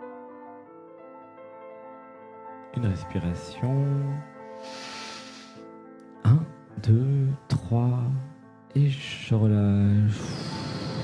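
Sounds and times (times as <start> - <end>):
background music with held tones: 0.0 - 11.0
person breathing in: 4.4 - 5.7.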